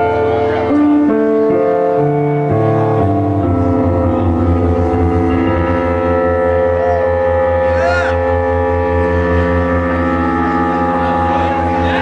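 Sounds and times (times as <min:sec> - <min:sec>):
sustained synthesizer chords: 0:00.0 - 0:12.0
pulsing low bass note: 0:02.1 - 0:12.0.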